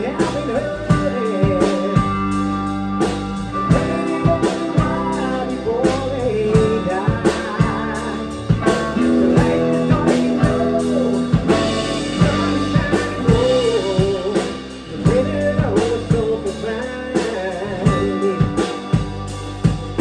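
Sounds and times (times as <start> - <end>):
rock band playing live: 0.0 - 20.0.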